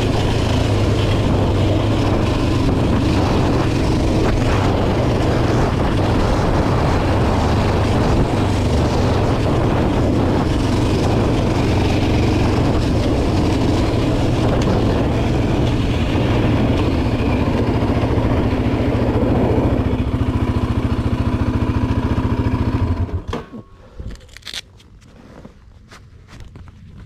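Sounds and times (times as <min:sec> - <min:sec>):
quad bike engine running: 0:00.0 - 0:23.8.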